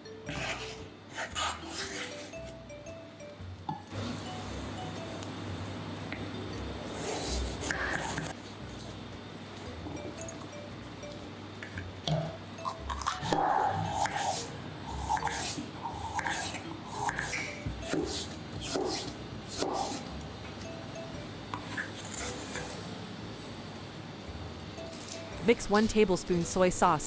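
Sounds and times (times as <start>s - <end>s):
background music: 0.0s - 5.7s, 9.7s - 11.4s
knife slicing on cutting board: 17.9s - 20.0s.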